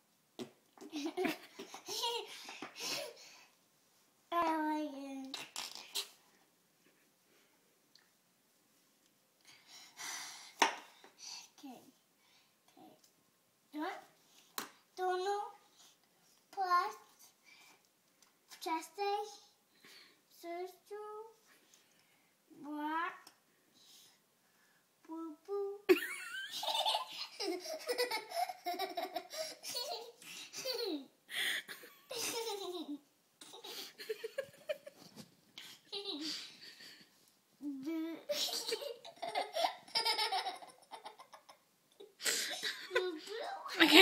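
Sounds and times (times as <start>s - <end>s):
young child laughing: 0.8s - 3.2s, 25.9s - 35.0s, 35.8s - 37.0s, 38.2s - 43.8s.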